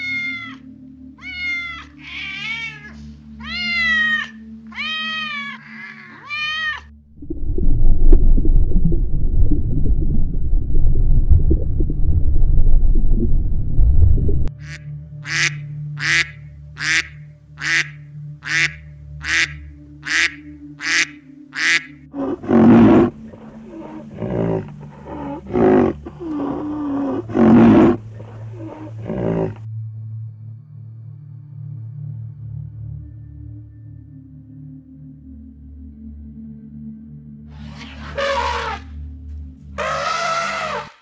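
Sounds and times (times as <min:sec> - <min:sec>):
low dense rumble: 0:07.0 - 0:14.5
mallard quacking: 0:14.6 - 0:22.0
low animal calls: 0:22.1 - 0:29.7, 0:37.6 - 0:38.9, 0:39.8 - 0:41.0.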